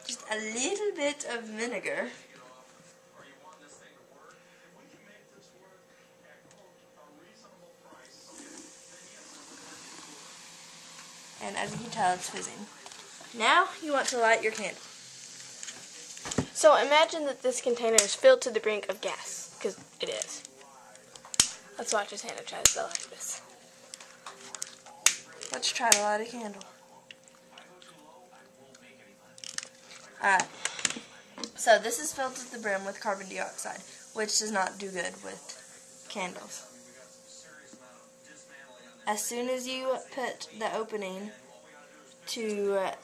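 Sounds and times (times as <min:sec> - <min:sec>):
mixture fizzing: 0:07.9 - 0:38.0
vinegar pouring: 0:08.0 - 0:16.5.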